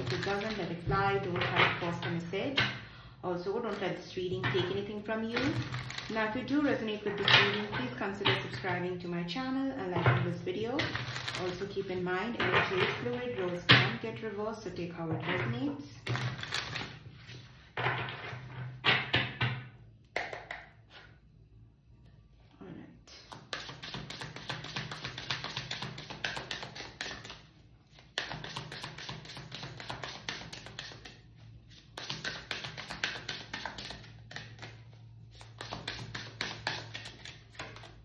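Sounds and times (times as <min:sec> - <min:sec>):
cards being shuffled: 0:05.4 - 0:06.2, 0:10.9 - 0:11.6, 0:16.1 - 0:17.5, 0:23.2 - 0:38.0.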